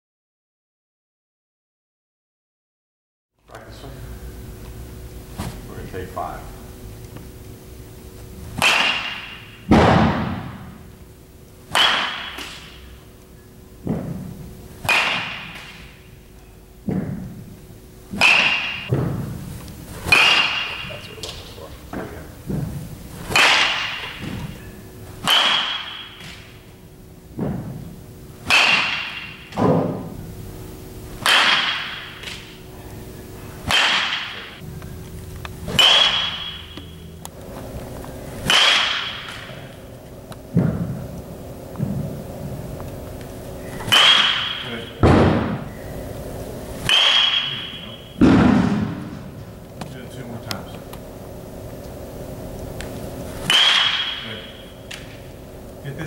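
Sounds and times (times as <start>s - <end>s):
baseball bat cracking on ball: 8.5s - 10.8s, 11.7s - 12.9s, 13.8s - 16.1s, 18.1s - 30.1s, 31.1s - 32.6s, 33.6s - 42.1s, 42.8s - 45.7s, 46.8s - 50.0s, 52.8s - 55.8s
high ringing tone: 46.9s - 48.2s.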